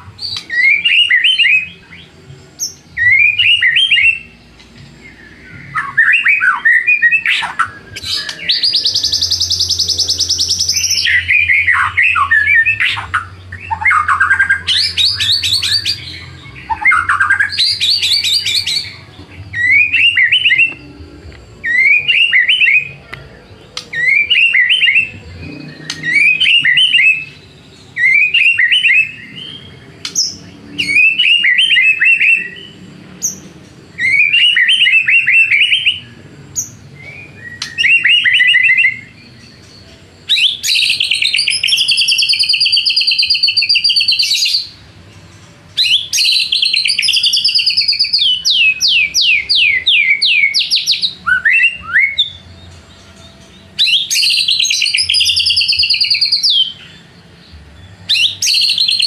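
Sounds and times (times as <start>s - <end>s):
bird whistling song: 0.0s - 44.9s, 45.8s - 59.0s
low hum: 7.6s - 28.0s.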